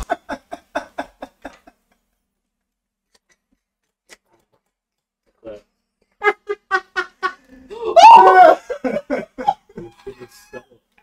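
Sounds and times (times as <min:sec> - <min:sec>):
people laughing: 0:00.0 - 0:01.8, 0:06.2 - 0:10.8.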